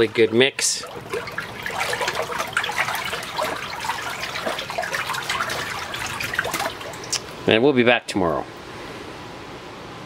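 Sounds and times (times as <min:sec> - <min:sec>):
water sloshing and splashing: 0:00.0 - 0:07.4.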